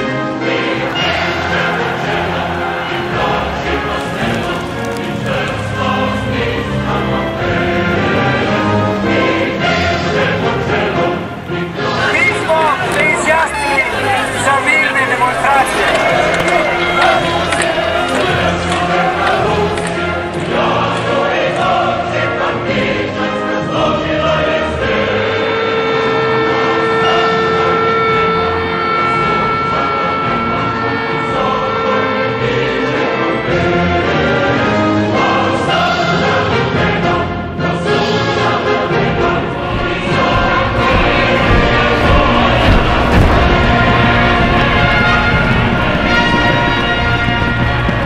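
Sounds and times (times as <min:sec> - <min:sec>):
choir singing held notes: 0:00.0 - 0:48.0
musical backing: 0:00.0 - 0:48.0.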